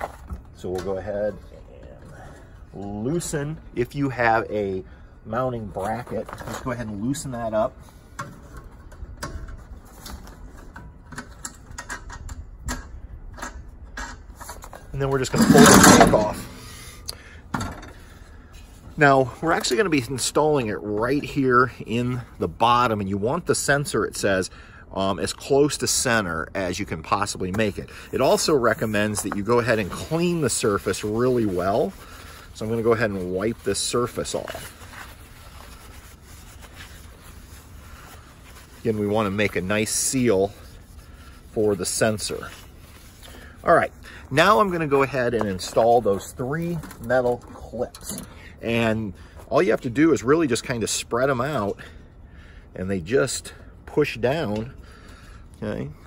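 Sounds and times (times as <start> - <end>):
cloth rubbing on metal: 14.4 - 17.0, 25.7 - 47.8.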